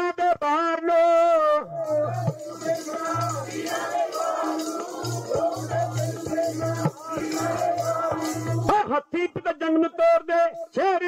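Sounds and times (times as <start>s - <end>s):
instrumental accompaniment with bass: 1.8s - 8.7s.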